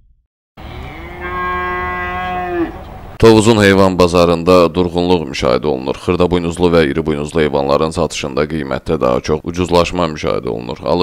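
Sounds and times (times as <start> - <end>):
cow mooing: 0.6 - 3.0.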